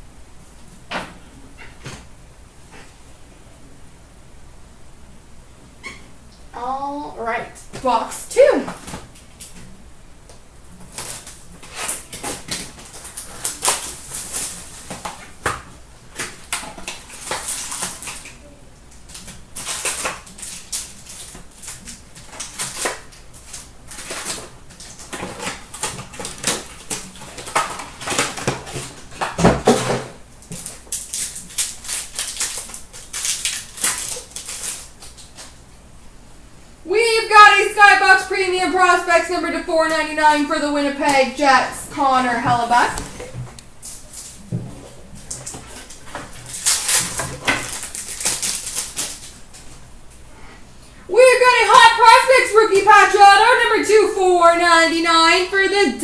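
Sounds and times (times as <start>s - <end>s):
card pack tearing open: 10.9s - 15.0s, 30.4s - 35.4s, 46.3s - 49.4s
cardboard box crackling and rustling: 44.1s - 49.3s.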